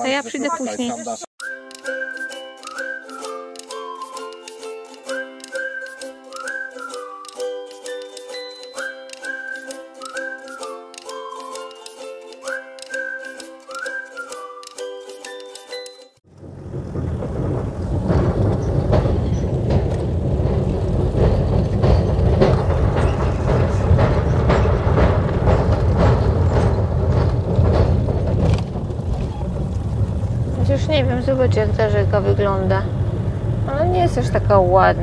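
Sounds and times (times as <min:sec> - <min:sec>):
music: 0:01.4 - 0:16.2
truck engine and road rumble: 0:16.2 - 0:35.0
knocks crossing a bridge: 0:16.3 - 0:35.0.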